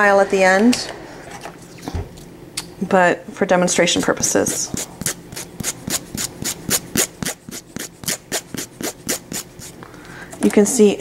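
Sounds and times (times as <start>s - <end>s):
nail file rasping on fingernail: 4.1s - 9.8s.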